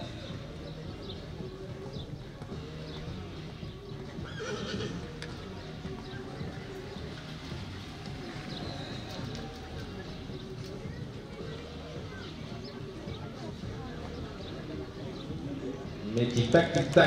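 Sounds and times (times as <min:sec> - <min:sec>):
background music: 0:00.0 - 0:17.0
horse hoofbeats on sand: 0:00.0 - 0:17.0
horse whinnying: 0:04.2 - 0:05.2.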